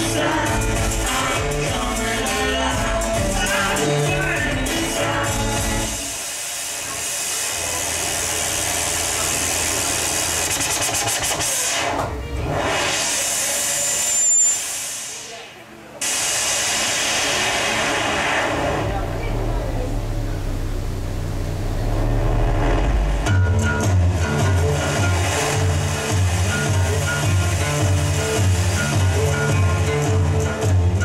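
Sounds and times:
hissing electronic noise: 0.0 - 31.0.

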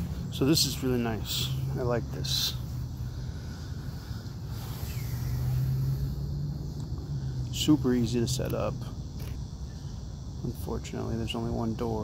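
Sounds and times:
low drone: 0.0 - 10.1
constant hum: 0.0 - 12.0.

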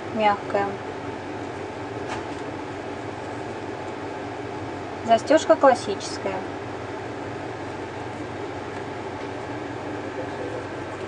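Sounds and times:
low rumble with hiss: 0.0 - 11.0.

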